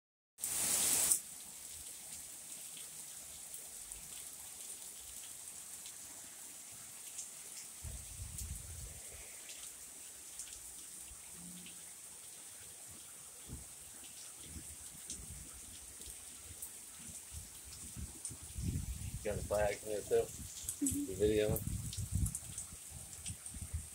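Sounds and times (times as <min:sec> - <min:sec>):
rain falling: 0:00.4 - 0:23.9.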